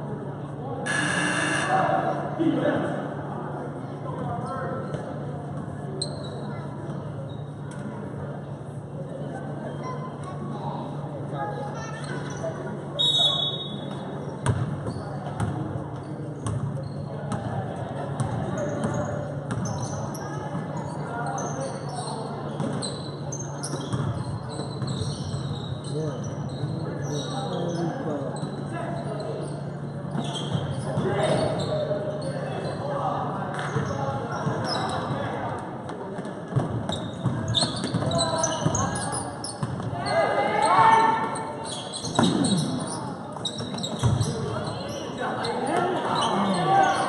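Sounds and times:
spectators chatting: 0.0 - 47.0
sneaker squeaks: 0.9 - 1.7, 4.1 - 7.9, 9.7 - 10.4, 11.8 - 17.5, 18.1 - 35.3, 36.5 - 47.0
basketball bouncing: 14.4 - 14.7.

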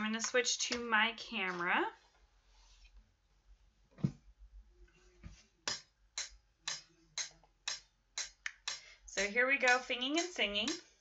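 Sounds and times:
metronome ticking: 5.7 - 10.9.

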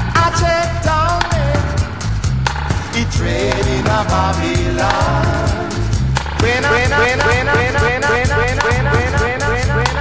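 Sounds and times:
drums and hi-hat: 0.0 - 10.0
reggae bass line: 0.0 - 10.0
falling note: 6.5 - 10.0.

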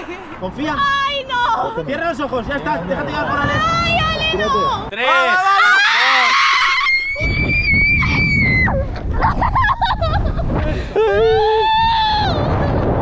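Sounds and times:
wind on microphone: 0.0 - 4.9, 6.6 - 13.0
people screaming: 3.3 - 9.5, 11.0 - 12.8.

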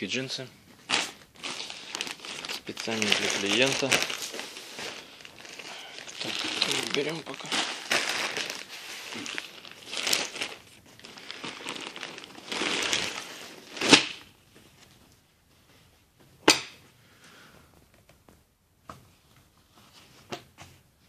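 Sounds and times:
plastic wrapping rustling: 0.0 - 15.2.

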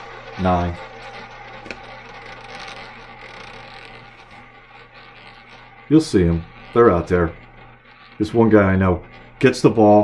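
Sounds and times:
ball rattling in roulette wheel: 0.0 - 10.0.

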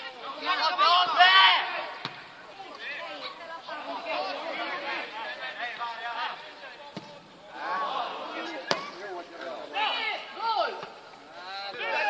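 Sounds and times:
men shouting: 11.6 - 12.0.

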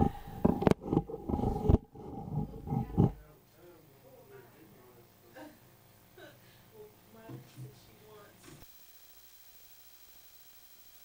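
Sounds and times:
faint room noise: 0.0 - 8.7
steady high hum: 0.0 - 11.0.

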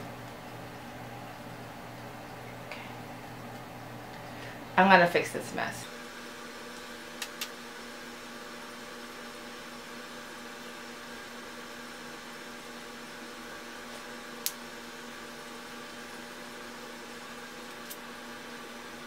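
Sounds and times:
background hum and hiss: 0.0 - 19.0.

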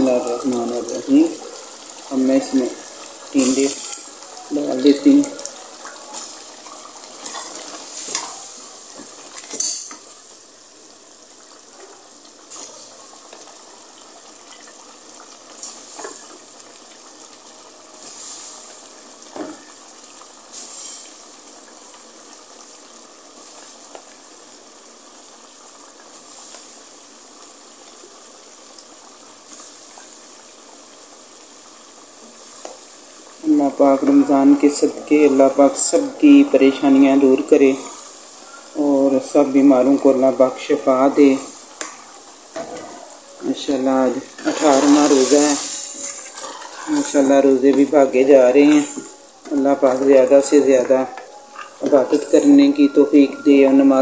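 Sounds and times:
curry sizzling in a pot: 0.0 - 54.0.

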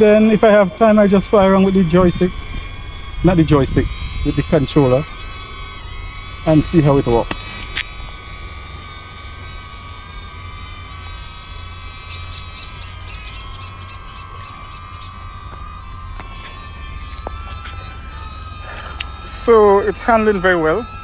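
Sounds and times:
drone propellers whining: 0.0 - 21.0.

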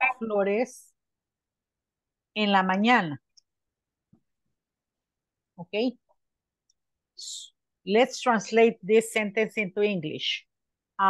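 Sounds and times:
woman speaking: 0.0 - 1.0, 2.4 - 3.3, 5.6 - 6.0, 7.2 - 10.5.

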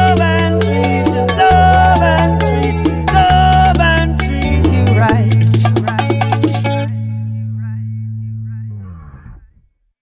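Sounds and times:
closing chord of dance music: 0.0 - 6.8.

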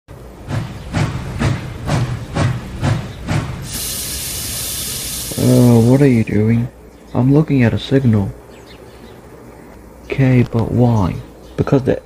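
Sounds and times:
steam locomotive chuffing: 0.1 - 6.3
steam hissing: 0.4 - 6.4.

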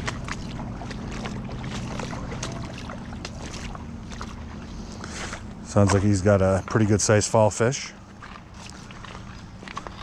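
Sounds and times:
footsteps on rocky riverbed: 0.0 - 10.0.

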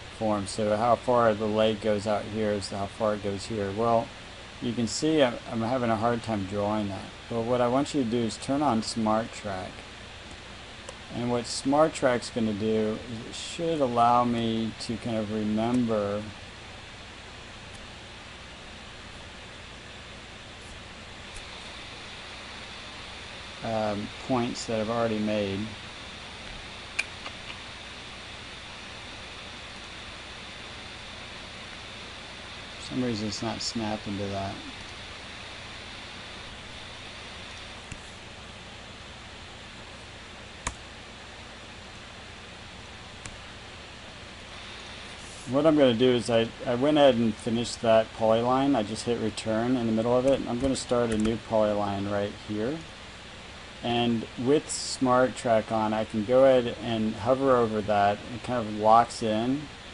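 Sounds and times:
steady background hiss: 0.0 - 59.9.

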